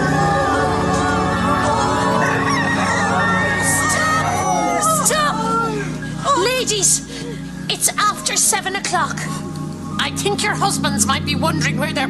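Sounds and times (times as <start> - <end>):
rooster crowing: 0.0 - 6.0
background music: 0.0 - 12.0.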